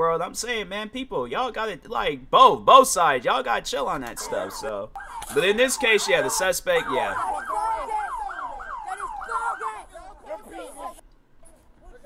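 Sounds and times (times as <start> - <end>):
police siren yelping: 4.2 - 11.0.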